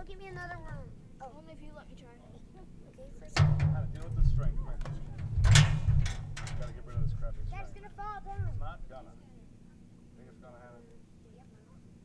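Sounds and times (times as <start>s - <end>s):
heavy low rumble: 3.4s - 9.0s.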